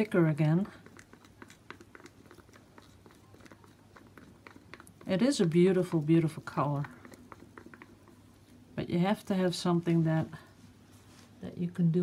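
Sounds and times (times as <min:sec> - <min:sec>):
stir stick clicking in cup: 0:00.0 - 0:08.6.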